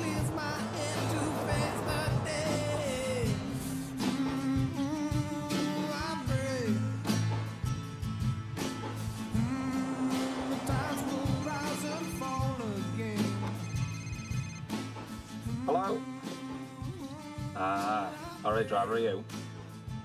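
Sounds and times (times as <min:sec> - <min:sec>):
drum hits: 0:00.0 - 0:06.6, 0:07.6 - 0:13.6
slow background song: 0:00.0 - 0:20.0
high electronic trill: 0:09.4 - 0:13.4.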